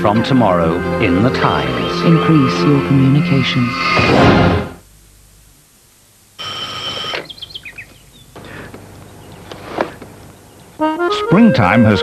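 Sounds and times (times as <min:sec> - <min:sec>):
bird chirps: 0:07.2 - 0:09.5.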